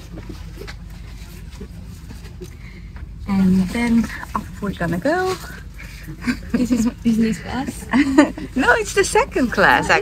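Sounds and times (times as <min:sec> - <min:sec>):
low steady cabin hum: 0:00.0 - 0:10.0.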